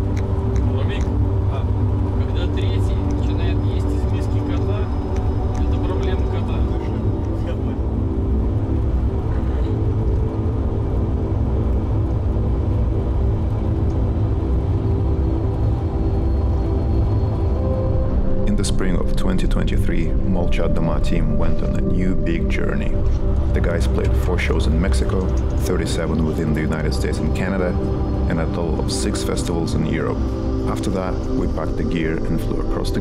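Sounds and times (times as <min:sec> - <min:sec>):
held droning tones: 0:00.0 - 0:33.0.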